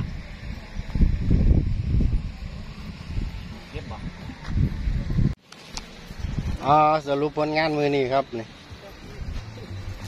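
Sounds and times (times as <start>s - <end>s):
wind buffeting microphone: 0.0s - 5.4s.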